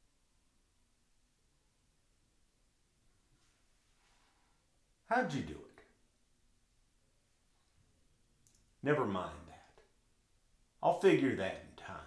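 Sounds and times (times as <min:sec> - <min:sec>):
man's voice: 0:05.1 - 0:05.8, 0:08.8 - 0:09.8, 0:10.8 - 0:12.0.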